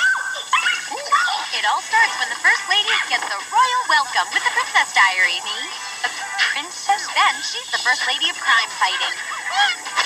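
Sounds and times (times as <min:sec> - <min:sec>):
high-pitched squeals and yelps: 0:00.0 - 0:01.5, 0:09.0 - 0:09.9.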